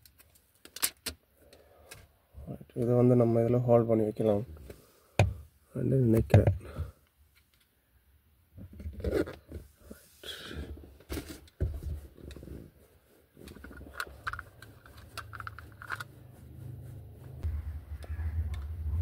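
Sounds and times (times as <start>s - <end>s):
plastic phone holder clicking and scraping: 13.4s - 16.3s.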